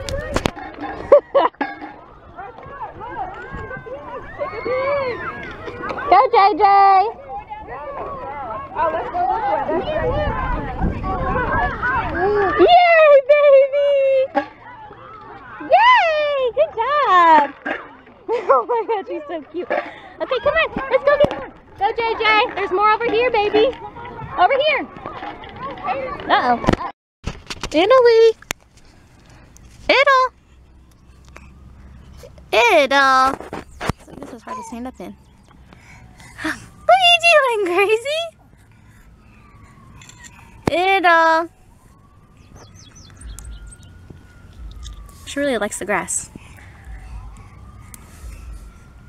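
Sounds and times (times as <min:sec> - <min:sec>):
distant siren wailing: 0:00.0 - 0:17.3, 0:28.0 - 0:49.0
wind rumble on microphone: 0:07.1 - 0:12.7
birds chirping: 0:28.8 - 0:49.0.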